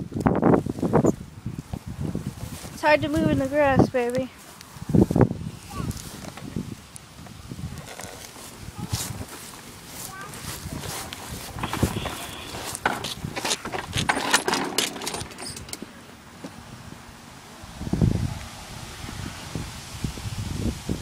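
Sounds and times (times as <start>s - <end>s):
plastic wheels rolling: 7.6s - 15.9s
plastic toy car rattling: 11.5s - 15.8s.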